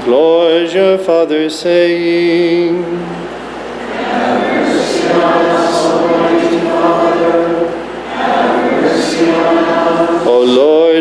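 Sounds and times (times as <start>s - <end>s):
congregation singing: 0.0s - 11.0s
man chanting: 10.2s - 11.0s.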